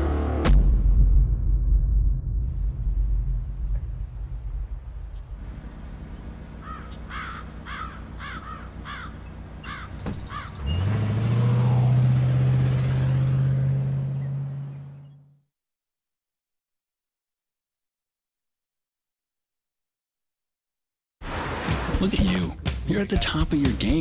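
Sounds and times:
car engine droning: 0.0s - 0.6s, 5.3s - 15.4s.

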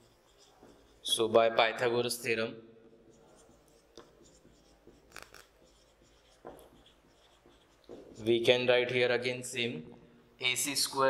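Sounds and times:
marker scratching on whiteboard: 0.0s - 9.0s.

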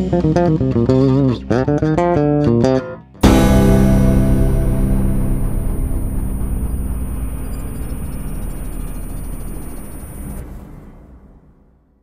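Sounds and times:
deep noisy low rumble: 3.2s - 11.0s.

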